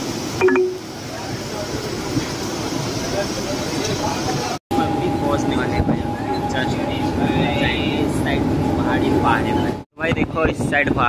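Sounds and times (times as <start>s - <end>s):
electric train rumble: 0.0s - 9.8s.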